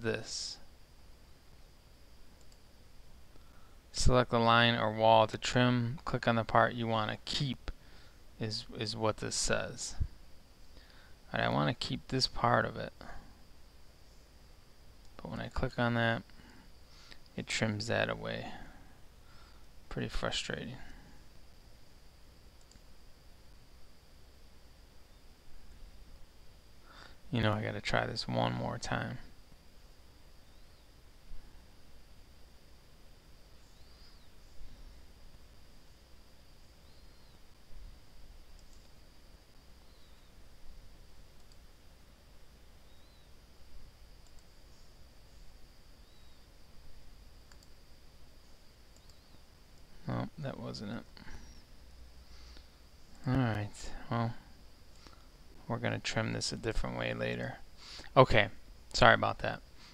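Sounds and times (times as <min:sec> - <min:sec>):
room hiss: 0:00.0 - 0:59.9
computer mouse clicks: 0:02.4 - 0:02.6, 0:22.6 - 0:22.9, 0:38.5 - 0:39.0, 0:41.4 - 0:41.7, 0:44.2 - 0:44.6, 0:47.5 - 0:47.8, 0:48.9 - 0:49.9.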